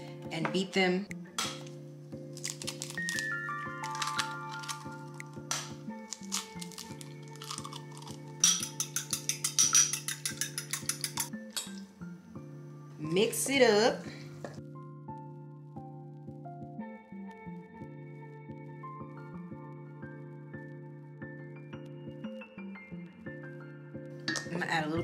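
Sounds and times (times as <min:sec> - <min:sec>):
background music: 0:00.0 - 0:25.0
eggs cracking taps: 0:01.4 - 0:11.8
whisk clinking in ceramic bowl: 0:08.4 - 0:11.3.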